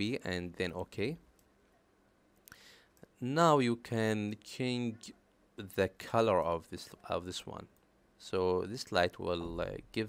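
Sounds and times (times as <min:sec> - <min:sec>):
person speaking: 0:00.0 - 0:01.6, 0:03.0 - 0:10.0.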